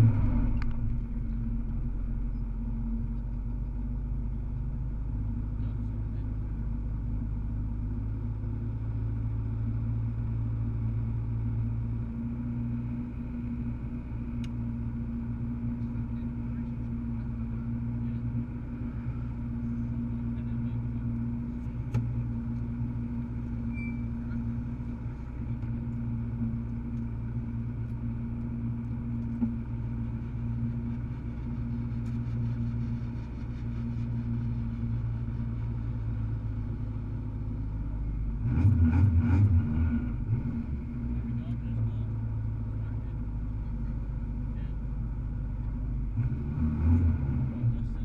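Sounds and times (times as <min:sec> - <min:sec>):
car engine idling: 0:00.0 - 0:46.2, 0:47.2 - 0:48.0.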